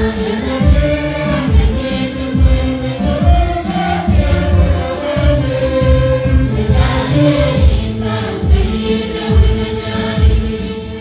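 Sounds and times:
steady low beat: 0.0s - 10.6s
congregation singing gospel song: 0.0s - 11.0s.

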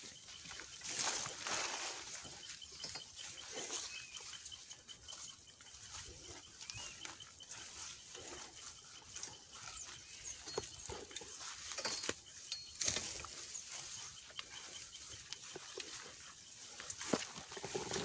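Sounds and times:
faint high chirp: 0.0s - 17.2s
grass and brush rustling: 0.0s - 18.0s.

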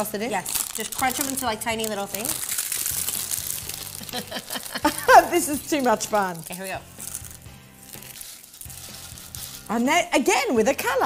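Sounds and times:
chips crushed by hand: 0.0s - 9.7s
soft background music: 0.0s - 11.0s.

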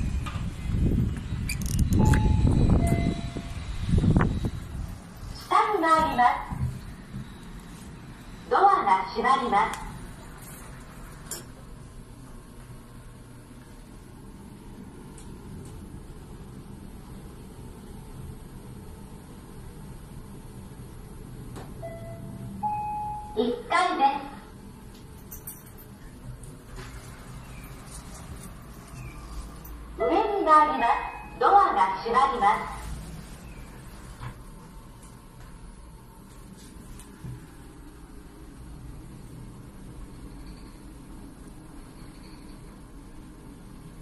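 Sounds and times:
heavy low rumble: 0.0s - 5.5s
elevator hum: 0.0s - 44.0s
elevator two-tone chime: 0.9s - 5.0s, 21.8s - 23.6s, 30.8s - 31.6s
two-note electronic chime: 2.0s - 3.6s.

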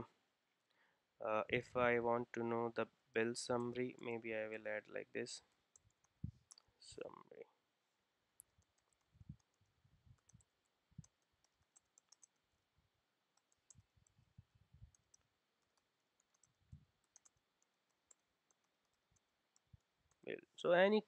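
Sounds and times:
typing on computer keyboard: 8.4s - 12.6s, 13.4s - 14.2s, 14.8s - 20.2s.

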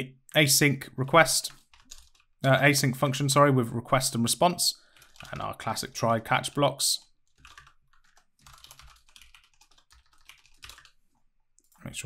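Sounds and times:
faint keyboard typing: 1.2s - 2.4s, 4.9s - 12.0s.

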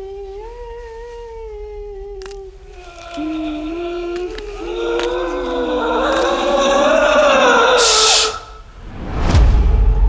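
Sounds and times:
whoosh into deep boom: 8.7s - 10.0s.

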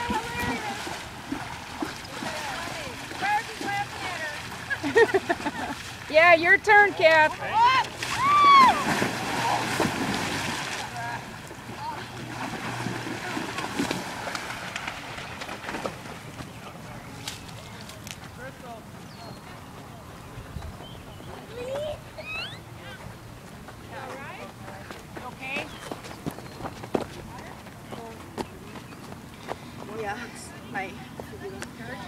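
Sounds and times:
horse splashing in water: 0.0s - 16.8s.

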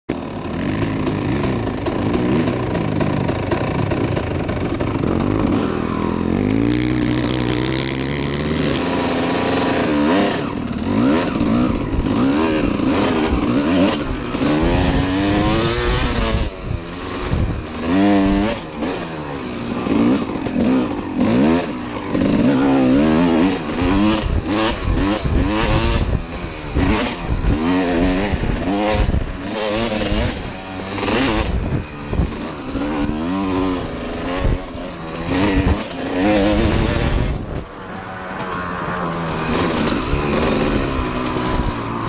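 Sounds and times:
dirt bike engine revving: 0.1s - 42.0s.

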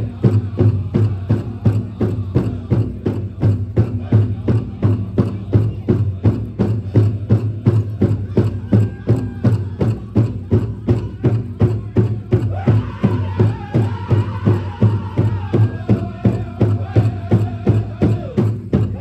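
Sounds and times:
big drum steady beat: 0.0s - 19.0s
group singing: 0.0s - 19.0s.

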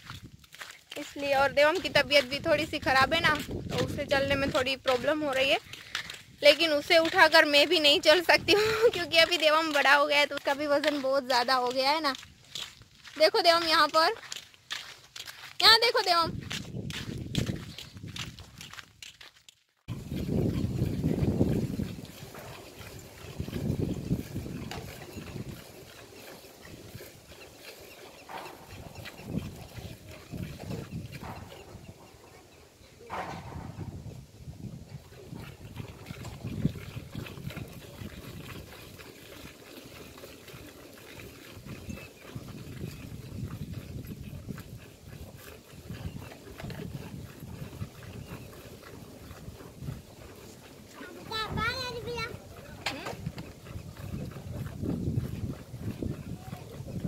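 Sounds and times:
milk squirting into steel pail: 19.9s - 31.7s, 34.6s - 52.2s.

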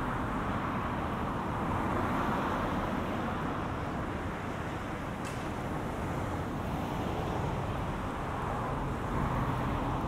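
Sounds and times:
city street traffic hum: 0.0s - 10.0s.

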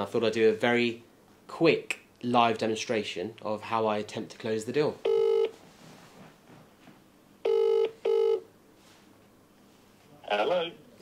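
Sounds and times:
telephone ringback tone: 5.1s - 5.5s, 7.4s - 8.5s.

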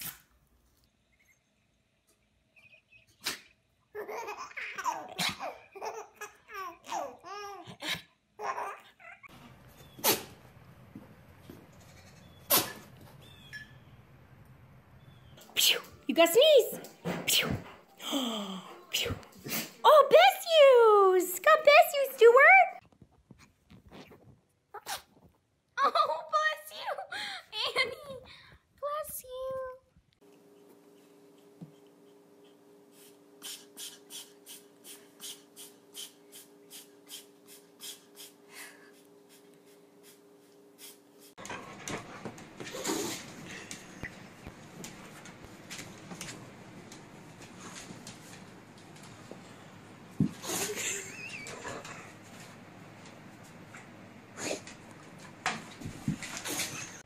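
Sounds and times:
small dog sneezing: 3.2s - 3.5s, 10.0s - 10.4s, 12.5s - 12.8s, 17.2s - 17.6s, 24.8s - 25.1s
person speaking: 15.7s - 16.8s, 19.8s - 22.8s.

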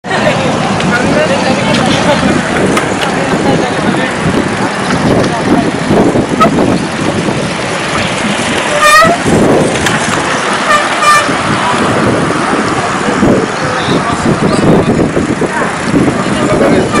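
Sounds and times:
indistinct voices: 0.0s - 17.0s
vehicle road and wind noise: 0.0s - 17.0s.

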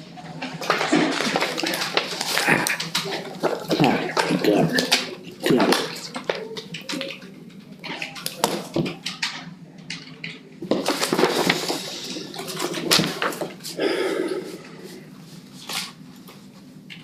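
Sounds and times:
crackles: 0.1s - 13.8s
paper rustling and shuffling: 0.2s - 13.8s, 14.8s - 17.0s.

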